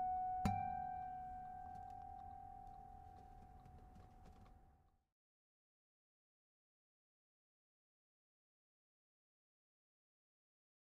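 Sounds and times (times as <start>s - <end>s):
acoustic guitar note ringing: 0.0s - 3.4s.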